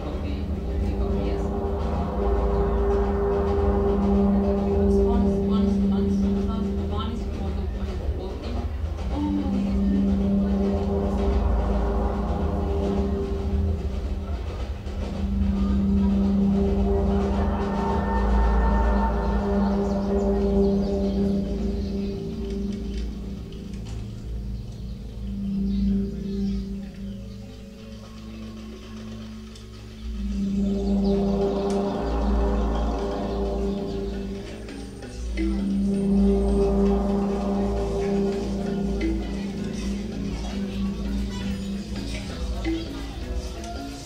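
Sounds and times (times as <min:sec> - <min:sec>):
electronic drone music: 0:00.0 - 0:44.0.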